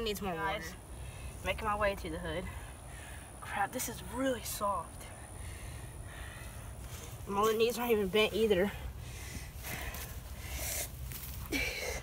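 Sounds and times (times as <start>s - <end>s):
steady low rumble: 0.0s - 12.0s
person breathing out heavily: 5.3s - 7.0s, 8.7s - 12.0s.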